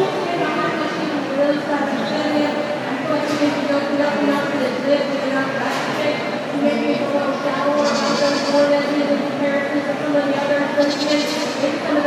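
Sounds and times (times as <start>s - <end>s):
crowd chatter: 0.0s - 12.0s
goat bleating: 7.7s - 8.6s, 10.8s - 11.8s.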